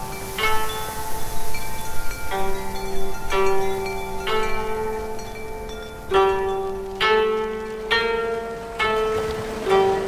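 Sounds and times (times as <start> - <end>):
koto plucked notes: 0.0 - 10.0.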